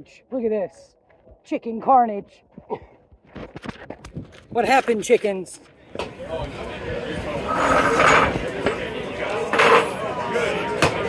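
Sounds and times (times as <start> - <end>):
indistinct background voices: 5.8 - 11.0.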